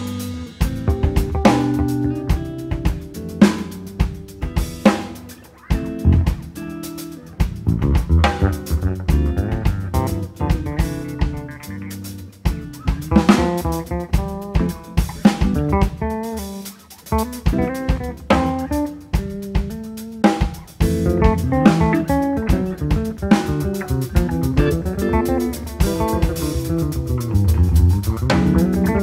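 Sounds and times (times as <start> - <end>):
bass guitar: 0.0 - 29.0
guitar: 0.0 - 29.0
snare and bass drum strokes: 0.0 - 29.0.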